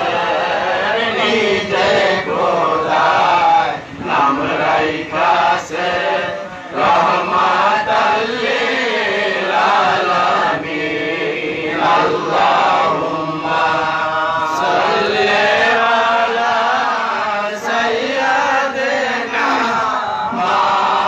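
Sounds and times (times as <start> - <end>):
men chanting devotional verses: 0.0 - 21.0.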